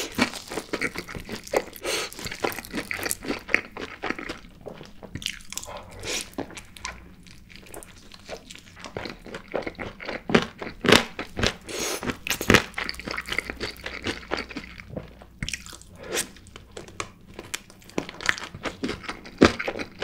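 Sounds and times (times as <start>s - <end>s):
crunching and chewing chicken: 0.0s - 20.0s.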